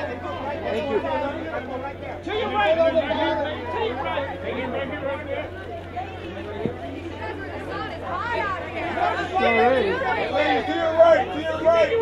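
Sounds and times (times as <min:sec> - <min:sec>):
voices talking and calling out: 0:00.0 - 0:12.0.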